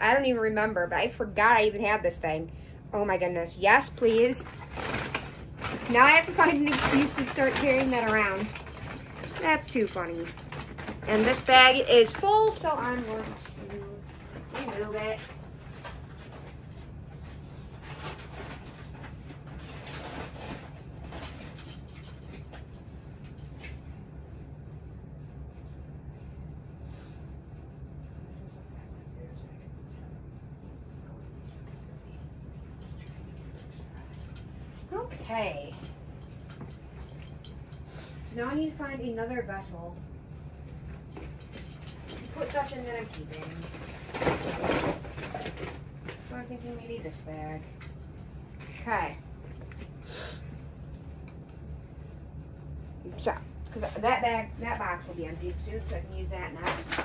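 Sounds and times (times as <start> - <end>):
steady low hum: 0.0 - 57.0
plastic bag rustling: 4.3 - 16.5.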